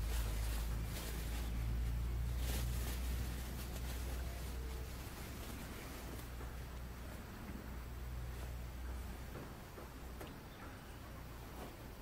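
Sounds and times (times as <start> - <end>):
jacket and plastic bag rustling: 0.0 - 6.4
steady low rumble: 0.0 - 12.0.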